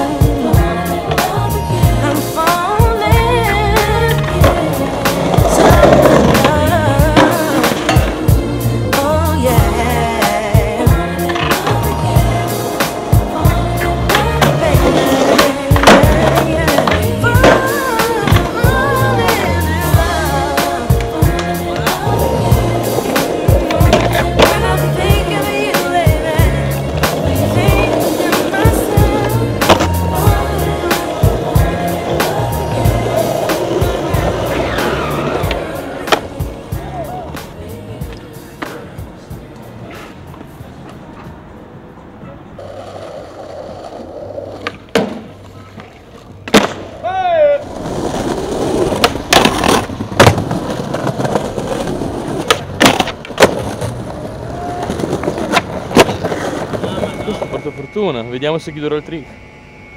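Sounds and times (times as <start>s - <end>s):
music: 0.0s - 41.3s, 47.8s - 59.9s
skateboards rolling on stone: 0.0s - 41.4s, 42.2s - 57.9s
skateboard clacks: 3.8s - 8.3s, 14.1s - 19.5s, 20.6s - 36.6s, 47.8s - 57.7s.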